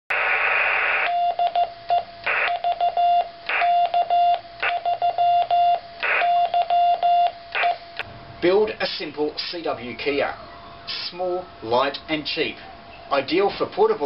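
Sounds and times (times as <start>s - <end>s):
radio hiss: 0.1s - 1.1s, 2.3s - 2.5s, 6.0s - 6.4s, 10.9s - 12.6s
morse code tone: 1.0s - 7.9s.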